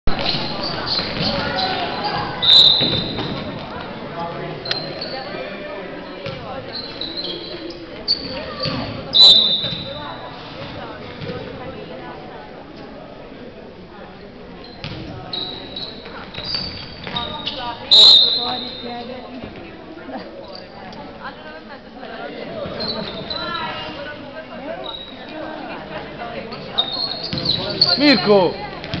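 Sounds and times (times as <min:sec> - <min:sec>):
shoe squeaks on court: 0:00.1 - 0:03.6, 0:04.6 - 0:05.4, 0:06.2 - 0:11.3, 0:14.6 - 0:19.0, 0:22.6 - 0:24.1, 0:24.8 - 0:25.3, 0:26.5 - 0:29.0
spectators' voices: 0:00.1 - 0:29.0
referee's whistle blast: 0:02.4 - 0:03.2, 0:09.1 - 0:09.9, 0:17.9 - 0:18.8.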